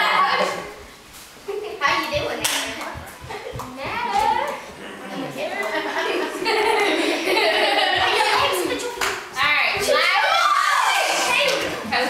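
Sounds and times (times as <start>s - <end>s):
girls chattering: 0.0s - 0.9s, 1.5s - 12.0s
hand clapping: 2.0s - 4.6s, 7.8s - 9.6s.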